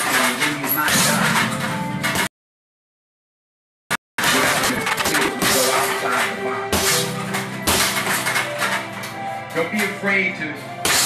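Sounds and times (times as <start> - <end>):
background music sustained tones: 4.2 - 11.0
punches hitting punching bag: 6.7 - 8.1.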